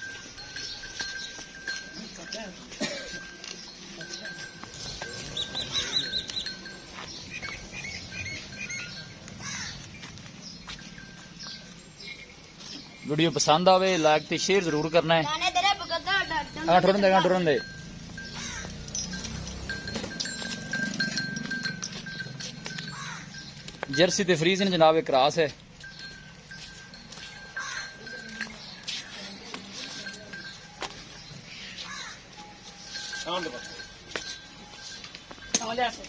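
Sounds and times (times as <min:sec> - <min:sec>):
cow hooves knocking and scuffing: 0:00.0 - 0:36.0
small birds chirping: 0:00.0 - 0:36.0.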